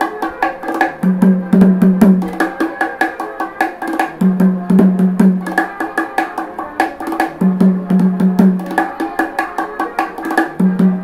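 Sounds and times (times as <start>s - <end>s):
bongos played by hand: 0.0s - 11.0s.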